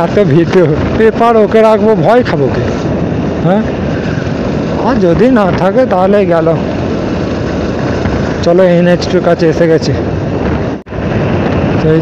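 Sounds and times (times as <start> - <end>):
wind and motorcycle road noise: 0.0 - 12.0.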